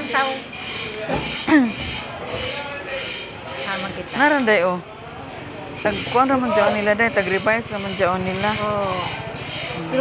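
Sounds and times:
motorcycle engine idling: 5.1s - 10.0s.

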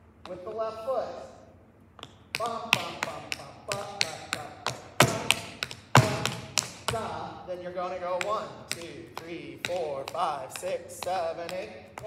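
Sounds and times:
dance taps on stage floor: 2.0s - 7.1s, 8.2s - 12.0s
man vocalizing rhythm: 2.4s - 5.4s, 6.0s - 12.0s.

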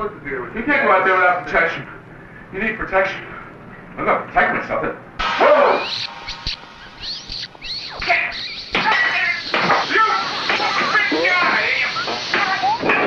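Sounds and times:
strange music: 5.2s - 8.8s
high sliding squeaks: 5.6s - 12.8s.

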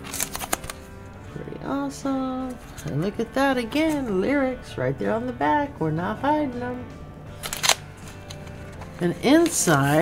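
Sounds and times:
plastic record sleeve crinkling: 0.0s - 1.2s, 7.4s - 10.0s.

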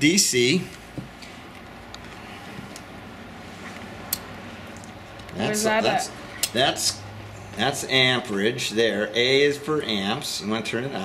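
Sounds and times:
steady room noise: 0.0s - 11.0s.

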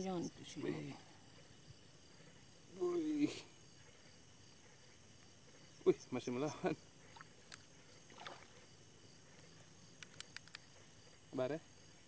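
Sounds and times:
outdoor night ambience: 0.0s - 12.0s
small quiet clicks: 7.4s - 7.7s, 9.4s - 10.8s.

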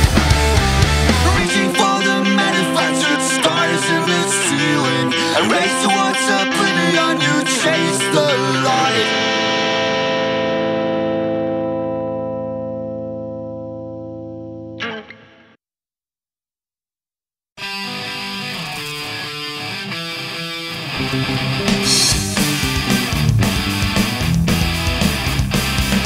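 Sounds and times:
punk rock band playing: 0.0s - 12.7s, 17.6s - 26.0s
distorted electric guitar chord: 0.0s - 15.2s, 20.8s - 25.5s.

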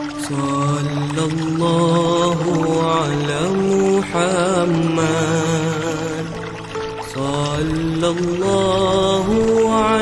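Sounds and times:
person singing devotional song: 0.0s - 6.5s, 7.1s - 10.0s.

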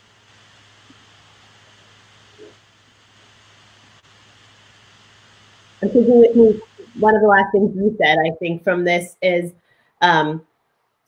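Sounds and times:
faint microphone hiss and hum: 0.0s - 11.0s.

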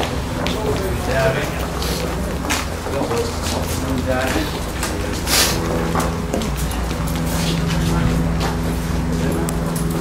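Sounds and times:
people chattering: 0.0s - 10.0s
steady low rumble: 0.0s - 10.0s.

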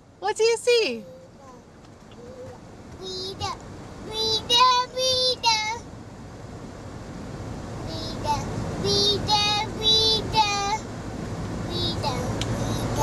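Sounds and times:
moving car rumble: 0.0s - 13.0s.

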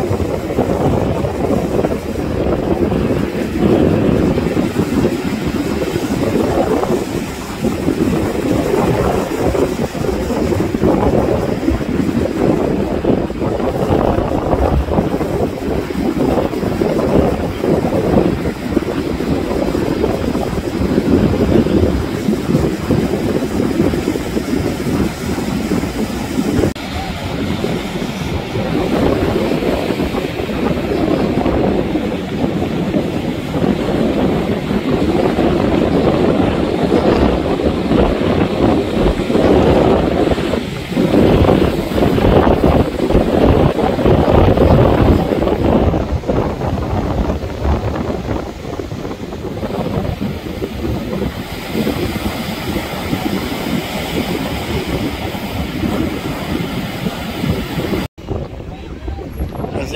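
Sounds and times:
surf breaking on shore: 0.0s - 59.9s
wind rumbling on microphone: 0.0s - 59.9s.

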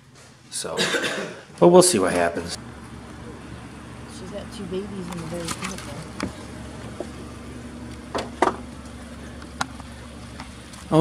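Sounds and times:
low outdoor background hum: 0.0s - 11.0s.

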